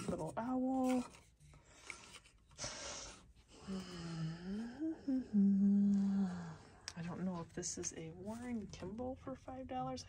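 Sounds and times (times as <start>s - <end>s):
woman humming: 3.6s - 6.8s.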